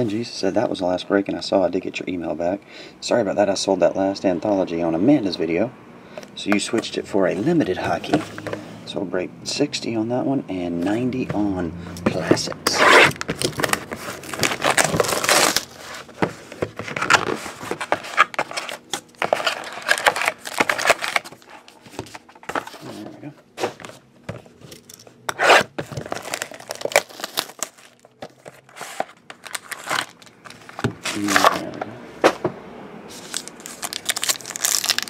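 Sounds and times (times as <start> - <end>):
foil wrappers tearing and crinkling: 13.0 - 15.8, 18.1 - 21.5, 25.9 - 31.7, 33.2 - 35.0.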